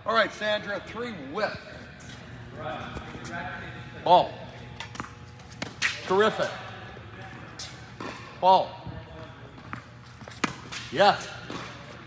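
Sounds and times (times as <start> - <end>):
tennis ball struck: 9.7 - 11.8.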